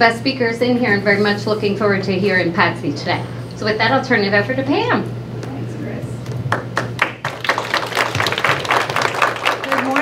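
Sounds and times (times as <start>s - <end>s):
audience applauding: 6.5s - 10.0s.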